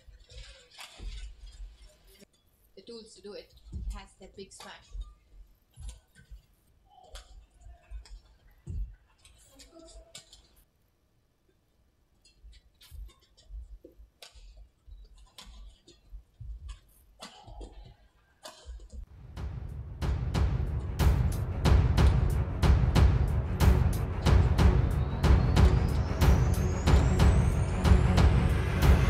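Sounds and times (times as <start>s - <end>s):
loud music with heavy drum beat: 19.4s - 29.0s.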